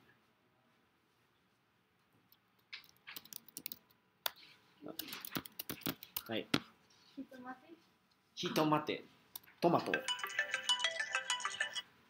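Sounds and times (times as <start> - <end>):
phone ringtone: 9.9 - 11.9.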